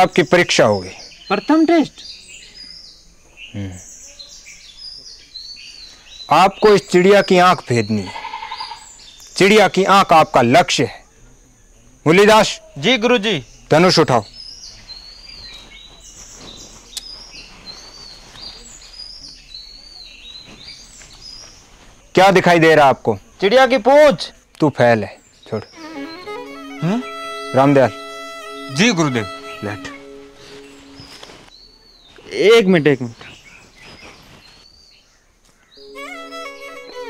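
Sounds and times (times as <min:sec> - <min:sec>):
birds chirping: 0:00.0 - 0:37.0.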